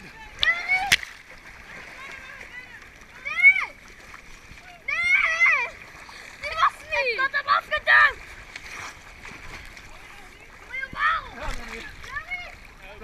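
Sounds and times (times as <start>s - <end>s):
pool water splashing: 0.0s - 13.0s
children shouting and squealing: 0.1s - 1.0s, 4.6s - 8.3s, 10.6s - 12.7s.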